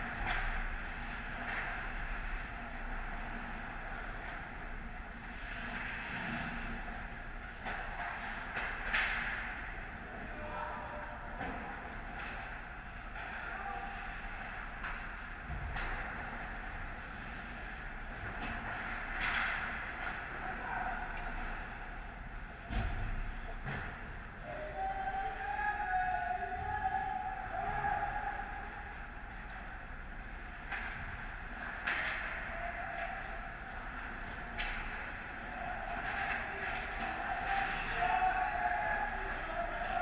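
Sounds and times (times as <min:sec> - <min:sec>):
steady hum: 0:00.0 - 0:40.0.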